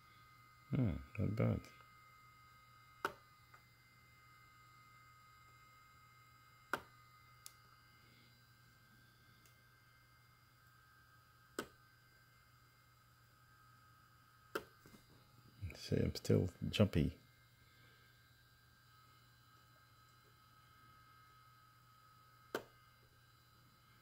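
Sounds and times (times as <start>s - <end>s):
spot welder snaps: 3.0s - 3.2s, 6.7s - 7.6s, 11.5s - 11.8s, 22.5s - 22.8s.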